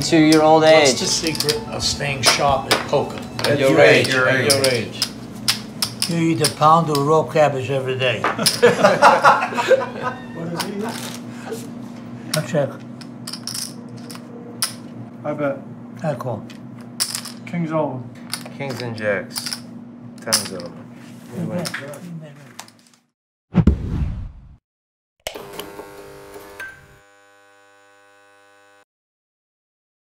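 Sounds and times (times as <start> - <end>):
ringing buzzy chord: 0.0 - 5.3
poker chips clacking: 1.3 - 1.6.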